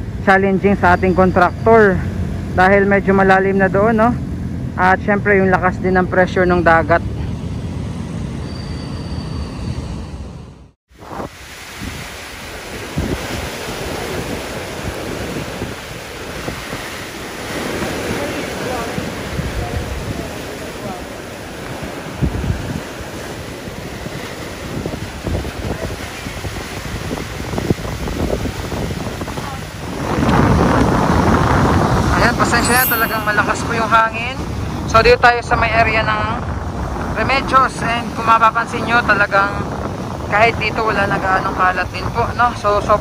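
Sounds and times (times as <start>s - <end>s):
wind buffeting microphone: 10.9s - 43.0s.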